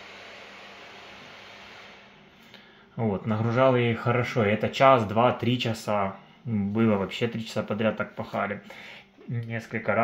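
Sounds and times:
laptop cooling fans whooshing: 0:00.0 - 0:03.4.

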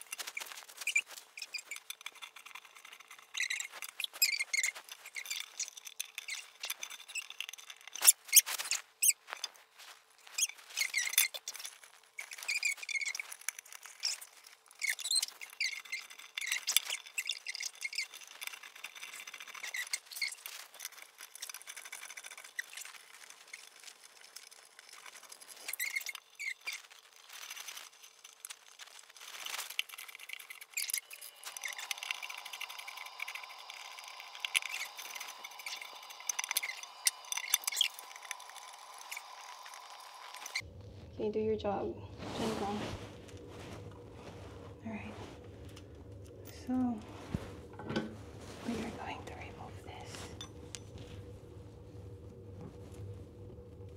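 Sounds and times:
plastic parts clicking and squeaking: 0:00.0 - 0:40.7
steady hum: 0:31.1 - 0:53.9.

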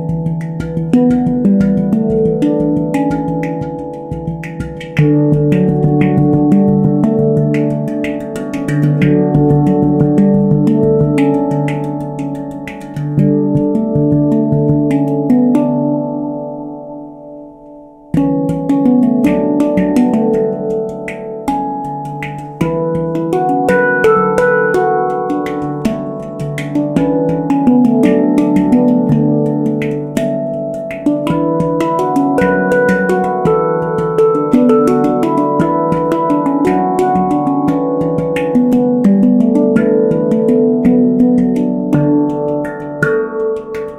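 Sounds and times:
handpan played with fingers: 0:00.0 - 0:43.9.

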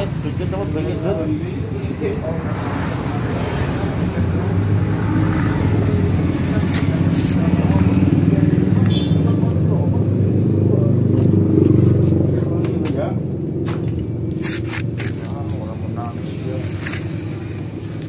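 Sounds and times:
indistinct talking: 0:00.0 - 0:18.0.

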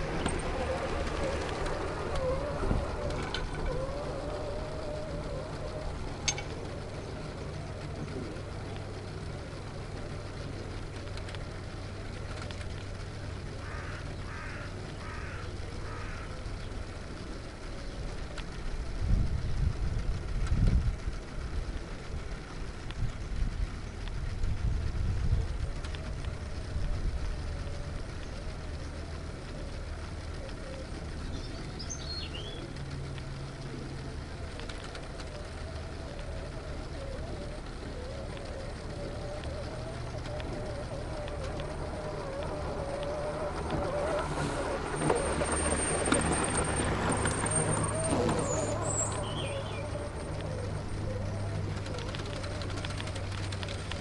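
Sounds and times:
small motors and gears whirring: 0:00.0 - 0:54.0
bird chirps: 0:30.3 - 0:32.8, 0:47.2 - 0:53.9.

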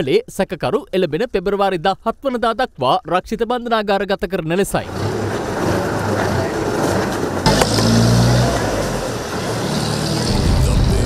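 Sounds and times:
bus idling: 0:04.8 - 0:11.0
low swell: 0:10.1 - 0:11.0.

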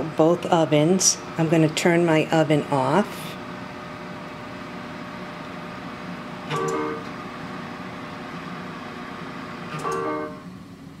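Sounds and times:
steady background hum: 0:00.0 - 0:11.0
oven control chime: 0:06.4 - 0:07.2, 0:09.7 - 0:10.5.

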